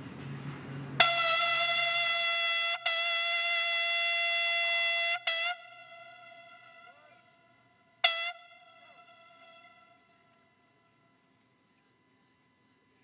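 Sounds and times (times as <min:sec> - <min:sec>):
bugle held note: 0:01.0 - 0:10.9.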